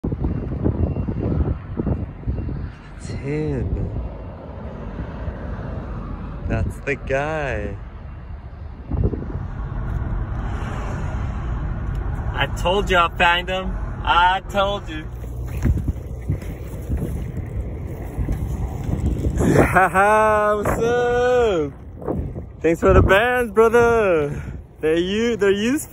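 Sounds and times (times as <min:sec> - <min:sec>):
wind buffeting microphone: 0:00.0 - 0:07.1, 0:07.8 - 0:25.9.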